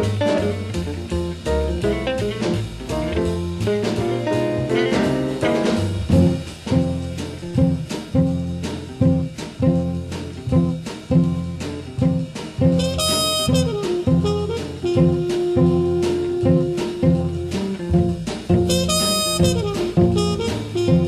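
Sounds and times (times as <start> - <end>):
soul jazz band playing: 0.0 - 21.0.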